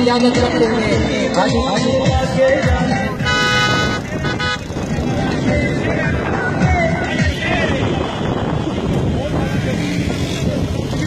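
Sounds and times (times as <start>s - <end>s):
moving vehicles: 0.0s - 11.0s
vehicle horn blast: 3.2s - 4.8s.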